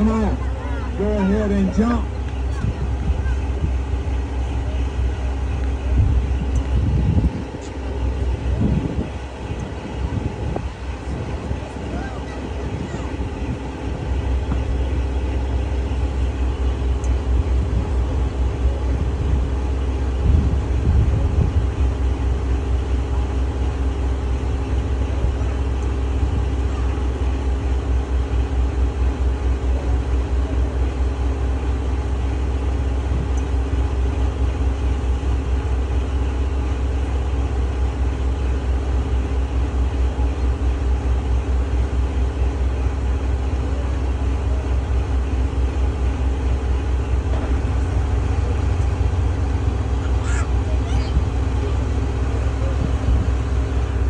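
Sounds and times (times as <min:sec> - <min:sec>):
boat engine droning: 0:00.0 - 0:54.0.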